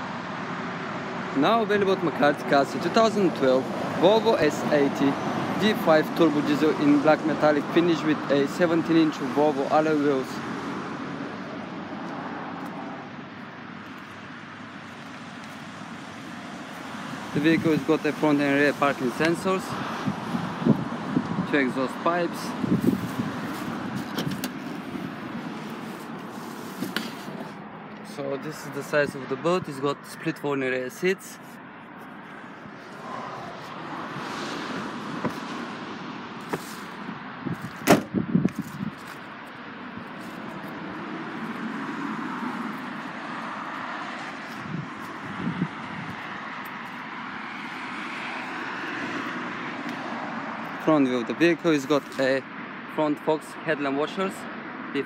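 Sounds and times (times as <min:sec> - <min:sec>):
car noise: 0:00.0 - 0:55.0.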